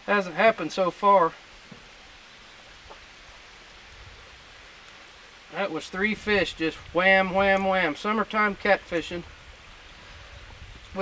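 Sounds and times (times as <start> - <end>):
river flowing: 0.0 - 11.0.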